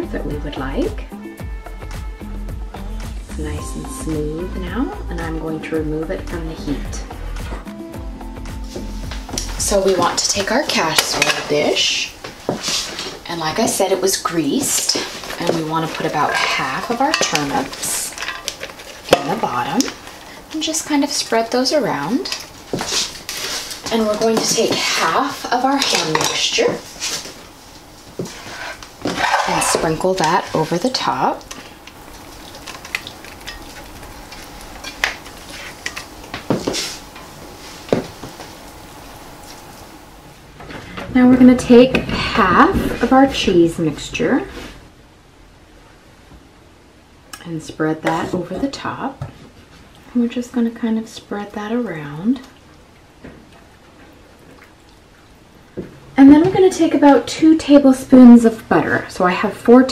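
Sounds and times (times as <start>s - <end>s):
spoon scraping skillet: 8.6s - 38.6s
spatula spreading sauce: 14.6s - 19.9s, 28.2s - 31.7s.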